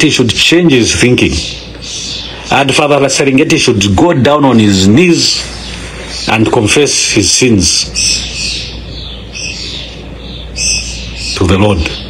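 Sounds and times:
bird chirping: 0.0s - 12.0s
low steady hum: 0.0s - 12.0s.

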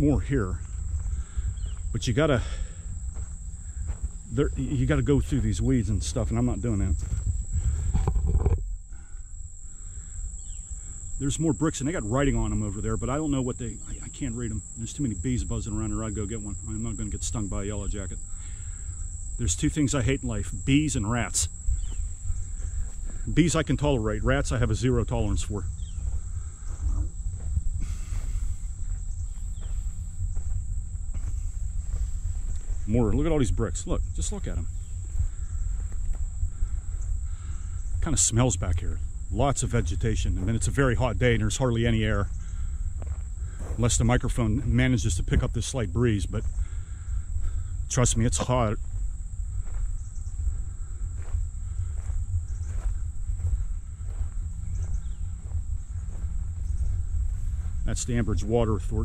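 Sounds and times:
faint footsteps: 0.0s - 9.1s, 19.6s - 59.0s
wind buffeting microphone: 0.0s - 9.6s, 21.3s - 59.0s
high-pitched insect drone: 0.0s - 59.0s.

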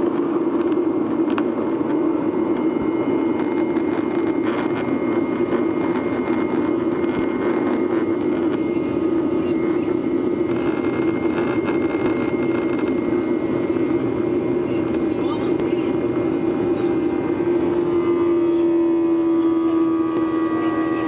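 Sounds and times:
faint high whine: 0.0s - 21.0s
jet engine cabin drone: 0.0s - 21.0s.

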